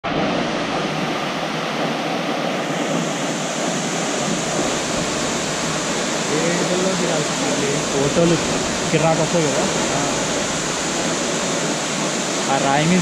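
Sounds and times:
waterfall rushing water: 0.0s - 13.0s.

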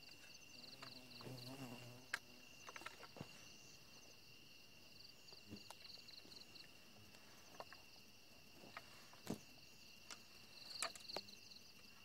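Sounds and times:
insects buzzing and trilling: 0.0s - 12.0s.

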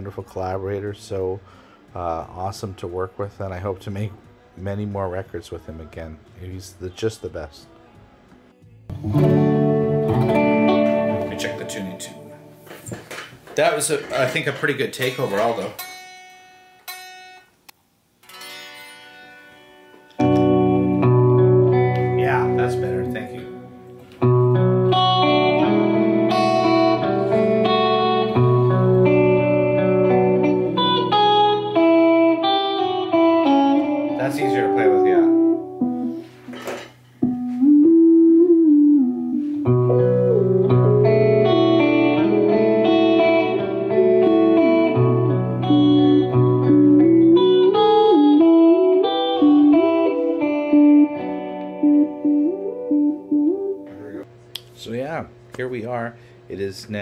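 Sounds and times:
electric guitar music: 8.9s - 13.2s, 18.2s - 54.3s.

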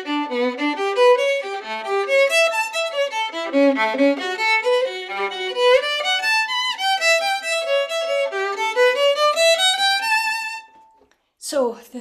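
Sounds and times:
solo violin melody: 0.0s - 11.0s.

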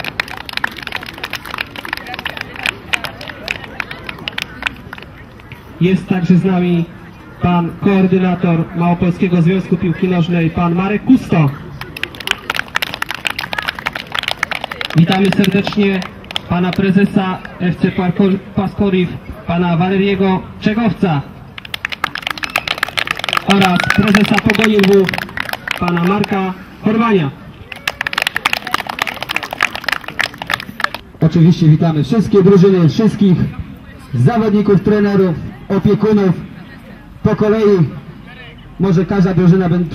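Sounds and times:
small crowd applause: 0.0s - 5.5s, 11.8s - 16.8s, 21.6s - 26.6s, 27.6s - 31.0s
people clapping: 0.0s - 5.6s, 11.8s - 17.6s, 21.6s - 26.5s, 27.6s - 31.0s.

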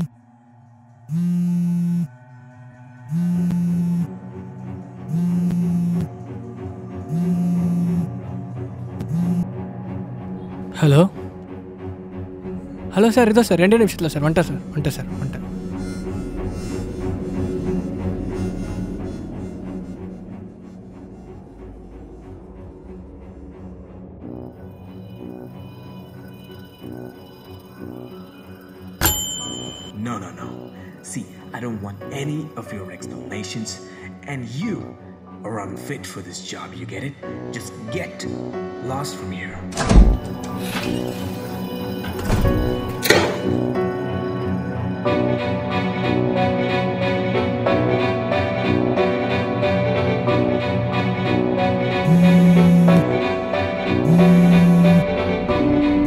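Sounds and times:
soft music: 0.0s - 56.0s
phone vibrating against bed: 9.0s - 9.5s, 52.1s - 53.0s, 54.0s - 55.1s
high bell-like ding: 29.0s - 30.8s.

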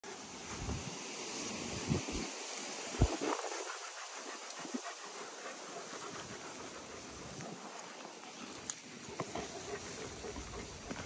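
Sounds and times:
dog panting: 3.0s - 11.0s.

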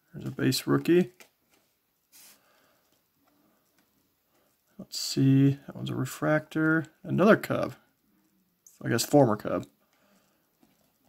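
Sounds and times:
trading cards sliding: 1.1s - 2.5s.

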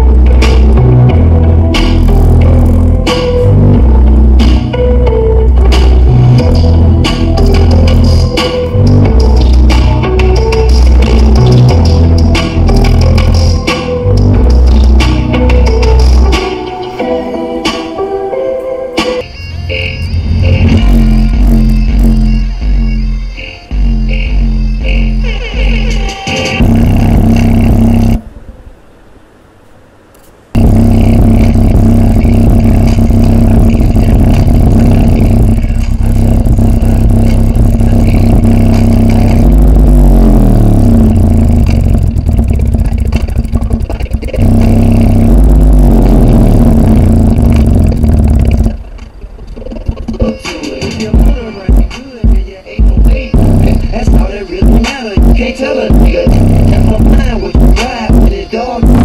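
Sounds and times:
bass-heavy distorted music: 0.0s - 28.3s, 30.6s - 59.0s.

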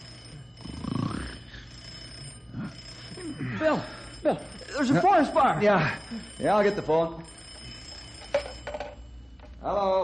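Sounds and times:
telephone bell ringing: 0.0s - 10.0s.

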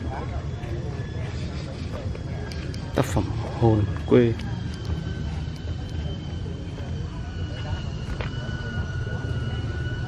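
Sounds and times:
high whine: 0.0s - 10.0s.

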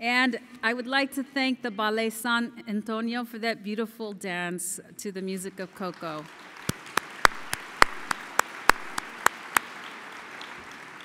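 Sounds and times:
audience applause: 6.0s - 11.0s
person clapping close: 6.2s - 11.0s.

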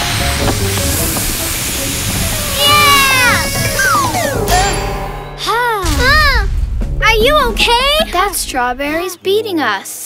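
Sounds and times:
cartoon blowing hiss: 0.0s - 4.5s
voice-like falling pitch sound: 2.4s - 4.7s.

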